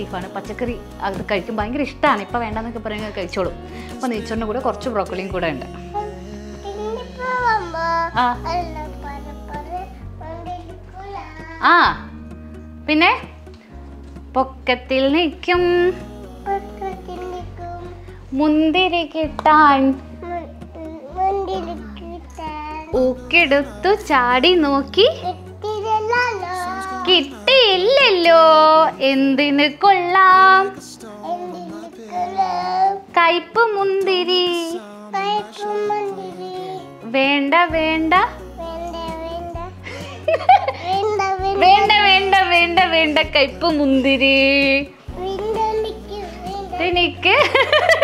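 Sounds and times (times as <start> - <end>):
background music: 0.0 - 48.0
child vocalising sing-song: 5.7 - 11.9, 16.0 - 18.2, 20.1 - 23.9, 25.0 - 28.1, 31.0 - 33.1, 34.6 - 37.1, 38.2 - 42.3, 45.0 - 48.0.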